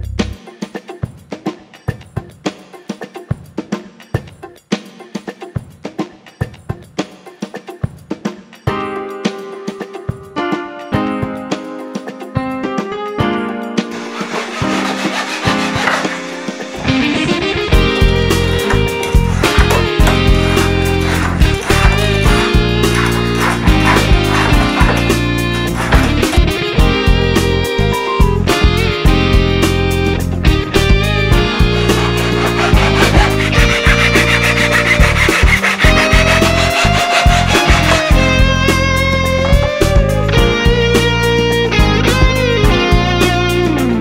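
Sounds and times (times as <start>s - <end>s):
background music: 0.0s - 44.0s
backsaw cutting wood: 13.9s - 16.8s, 18.2s - 26.6s, 31.5s - 38.4s
saw rasping through wood: 13.9s - 16.8s, 18.2s - 26.6s, 31.5s - 38.5s.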